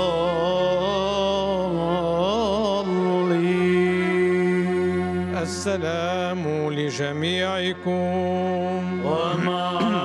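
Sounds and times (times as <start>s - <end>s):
man chanting a hymn: 0.0s - 10.0s
steady low drone: 0.0s - 10.0s.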